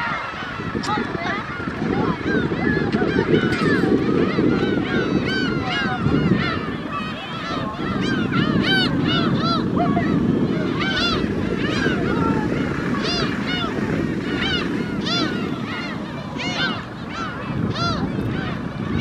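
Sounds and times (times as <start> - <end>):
gulls calling: 0.0 - 19.0
steady low rumble: 0.0 - 19.0.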